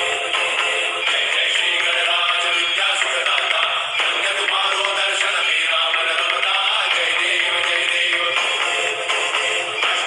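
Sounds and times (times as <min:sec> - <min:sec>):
song with vocals: 0:00.0 - 0:10.0.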